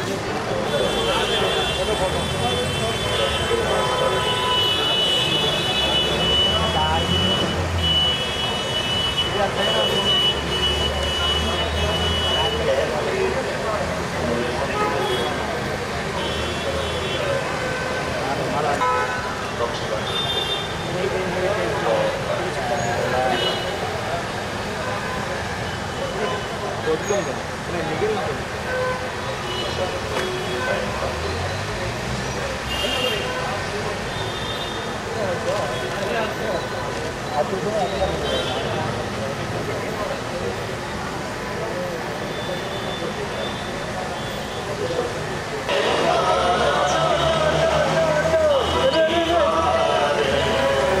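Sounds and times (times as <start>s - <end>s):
low traffic rumble: 0.0s - 51.0s
indistinct voices: 34.8s - 51.0s.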